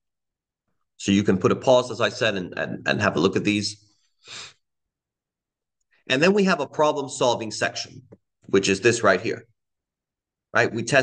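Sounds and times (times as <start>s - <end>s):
man's short breath: 4.0s - 4.6s.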